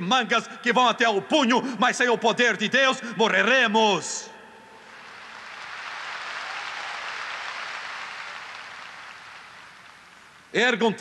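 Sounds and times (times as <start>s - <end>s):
congregation applauding: 4.8s - 10.5s.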